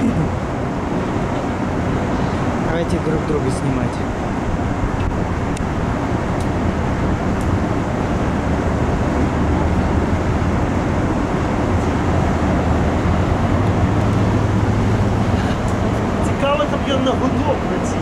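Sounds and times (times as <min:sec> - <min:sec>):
low hum: 0:00.0 - 0:18.0
low outdoor rumble: 0:00.0 - 0:18.0.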